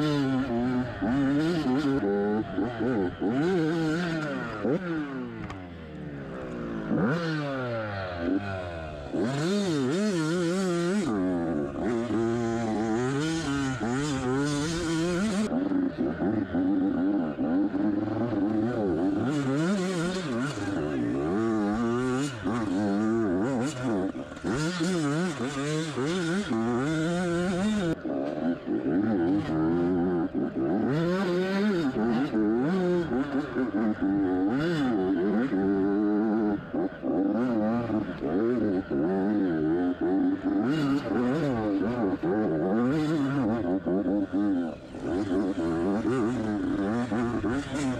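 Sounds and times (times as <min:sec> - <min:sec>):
dirt bike engine revving: 0:00.0 - 0:47.9.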